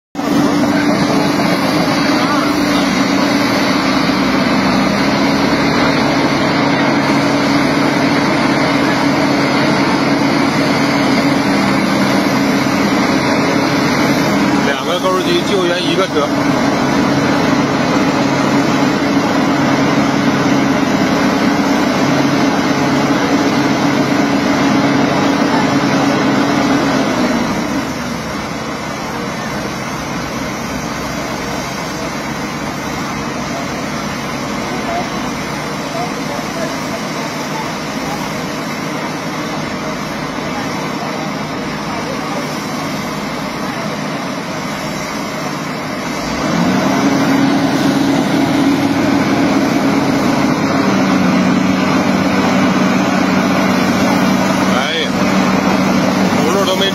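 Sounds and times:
heavy diesel engine under load: 0.2s - 56.9s.

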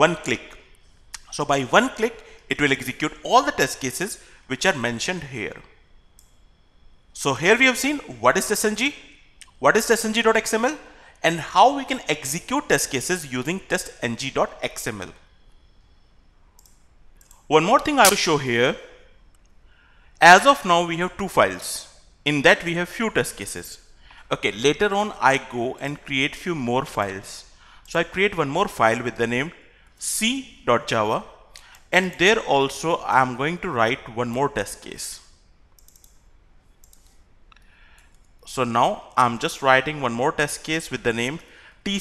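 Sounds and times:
low background hiss: 0.0s - 42.0s
faint computer mouse clicks: 16.6s - 17.4s, 35.7s - 36.2s, 36.8s - 38.4s.

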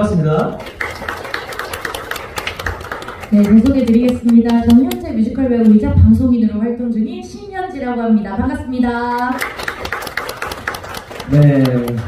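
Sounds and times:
audience applauding: 0.0s - 5.1s, 9.1s - 12.0s.

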